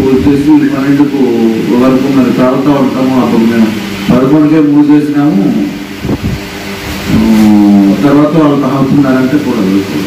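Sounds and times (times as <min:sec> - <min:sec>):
man holding a long vowel: 0:07.0 - 0:08.7.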